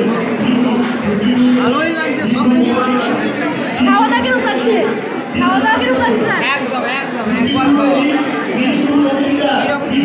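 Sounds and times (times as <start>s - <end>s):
crowd of people talking: 0.0s - 10.0s.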